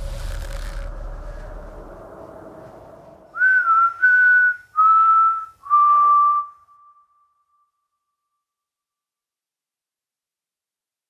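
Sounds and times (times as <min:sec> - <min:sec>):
person whistling long notes: 0:03.3 - 0:07.3.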